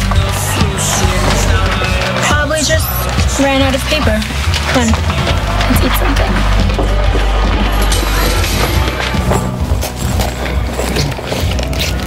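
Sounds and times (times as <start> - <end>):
song with steady low bass: 0.0 - 11.7.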